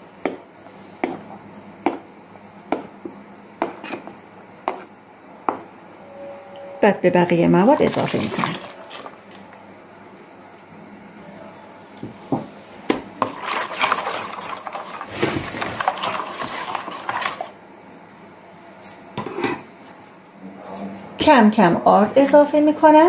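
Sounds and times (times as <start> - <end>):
metal spoon stirring batter in bowl: 7.7 - 9.4, 13.2 - 17.5.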